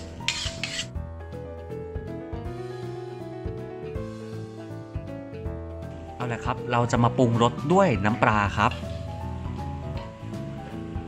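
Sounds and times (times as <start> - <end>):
spatula scraping a wok: 0.0 - 1.0
soft background music: 0.0 - 11.0.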